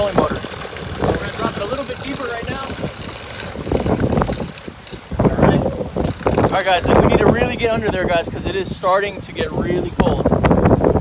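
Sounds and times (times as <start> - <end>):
water churning and splashing: 0.0 - 9.3
wind buffeting microphone: 0.0 - 11.0.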